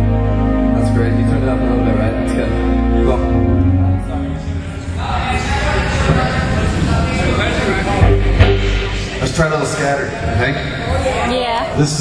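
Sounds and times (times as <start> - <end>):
heavy bass: 0.0 - 11.0
live rock band: 7.8 - 10.0.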